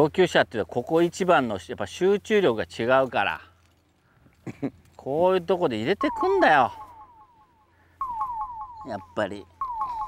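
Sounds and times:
rapid falling beeps: 6.0 - 10.0.

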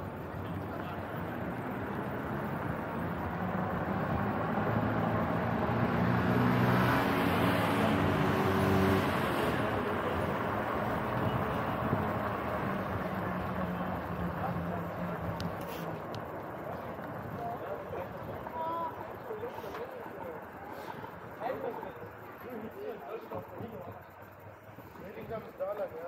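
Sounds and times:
motor vehicle engine: 0.0 - 26.0
wind: 0.0 - 26.0
bicycle tyre noise: 10.9 - 21.2.

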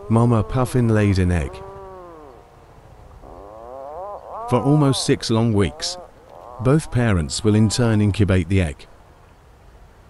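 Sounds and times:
puffin moaning call: 0.0 - 2.4, 3.2 - 7.9.

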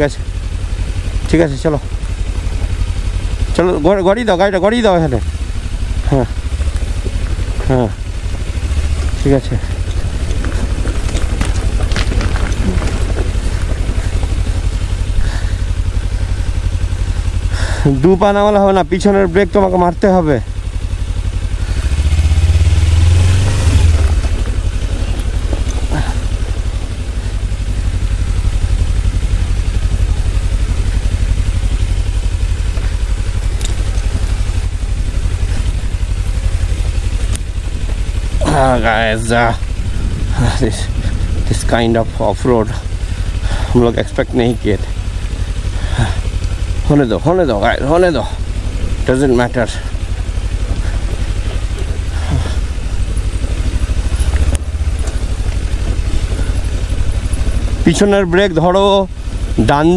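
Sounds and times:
motorcycle engine running low speed: 0.0 - 59.9
tyres on stony dirt track: 0.0 - 59.9.

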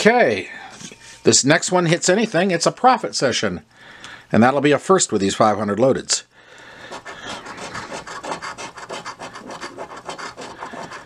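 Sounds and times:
coin scratching lottery ticket: 6.9 - 11.0.

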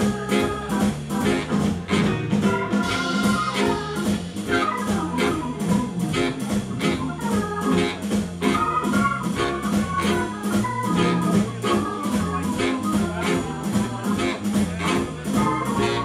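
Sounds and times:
blues band playing: 0.0 - 16.0
organ-sounding keyboard: 0.0 - 16.0.

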